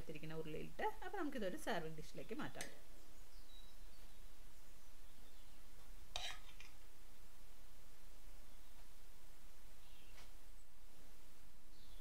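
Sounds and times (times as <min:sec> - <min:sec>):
spatula scraping glass bowl: 0:06.2 - 0:06.7.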